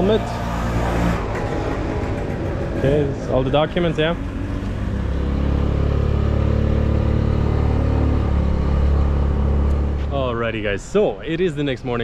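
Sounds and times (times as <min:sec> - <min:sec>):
scooter engine running: 0:00.0 - 0:10.1
road noise: 0:00.0 - 0:12.0.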